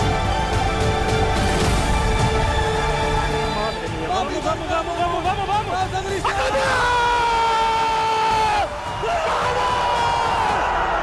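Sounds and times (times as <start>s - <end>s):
commentator shouting: 3.7s - 10.5s
stadium crowd cheering: 3.8s - 11.0s.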